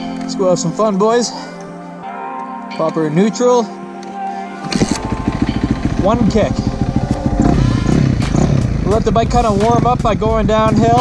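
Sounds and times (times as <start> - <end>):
dirt bike kick-start: 4.6 - 11.0
dirt bike engine idling: 4.7 - 11.0.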